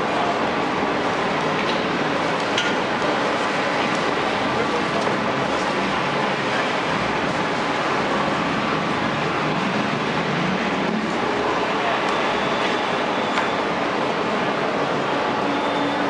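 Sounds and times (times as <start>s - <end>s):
passers-by talking: 0.0s - 6.8s, 10.8s - 16.0s
crowd noise: 0.0s - 16.0s.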